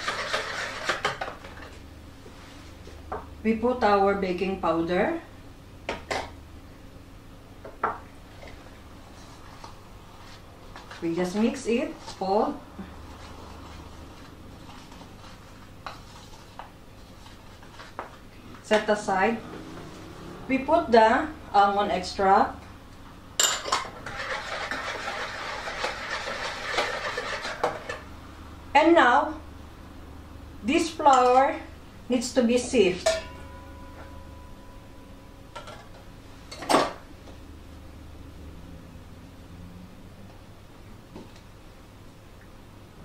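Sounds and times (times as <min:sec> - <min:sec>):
utensil stirring batter in bowl: 0:00.0 - 0:01.3, 0:24.0 - 0:28.0
low steady hum: 0:00.0 - 0:43.0
kitchenware clink: 0:23.4 - 0:23.9, 0:33.0 - 0:34.3.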